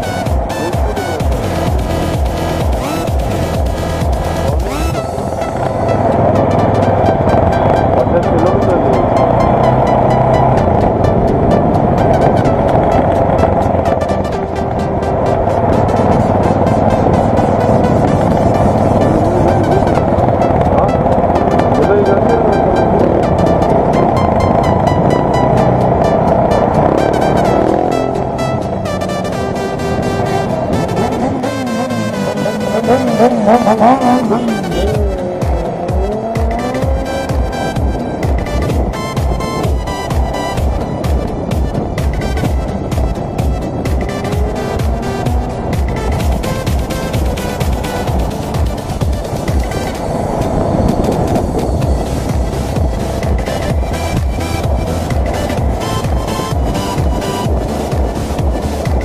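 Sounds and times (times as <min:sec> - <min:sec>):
electronic dance music: 0:00.0 - 0:59.0
motorcycle engine: 0:00.0 - 0:59.0.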